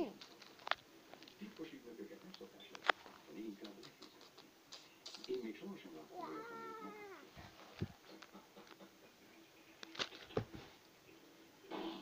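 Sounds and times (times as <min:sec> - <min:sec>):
faint low voices: 0:00.0 - 0:12.0
cat meowing: 0:06.2 - 0:07.3.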